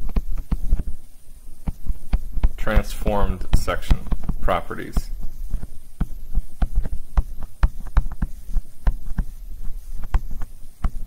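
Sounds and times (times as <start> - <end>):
stylus tapping on tablet screen: 0.0 - 0.9, 1.6 - 11.0.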